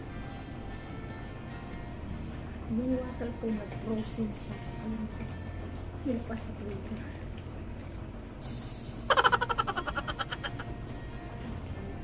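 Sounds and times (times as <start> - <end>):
woman laughing: 9.1 - 10.7.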